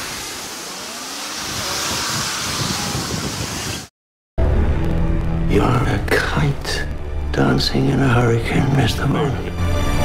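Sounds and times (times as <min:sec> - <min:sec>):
jet engines rushing and whining: 0:00.0 - 0:03.9.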